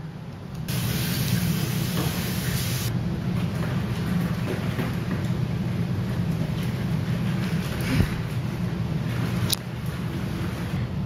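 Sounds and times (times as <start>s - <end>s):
kitchen tap running: 0.7s - 2.9s.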